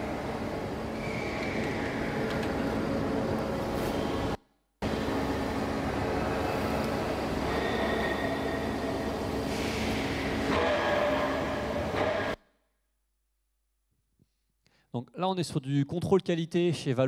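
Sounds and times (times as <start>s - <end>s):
machinery rumble and hiss: 0.0s - 10.6s.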